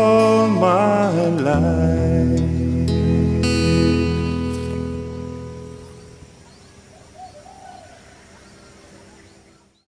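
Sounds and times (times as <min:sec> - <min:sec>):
acoustic guitar chord ringing: 0:00.0 - 0:06.4
faint higher chirps: 0:03.6 - 0:09.9
bird calling: 0:04.1 - 0:09.9.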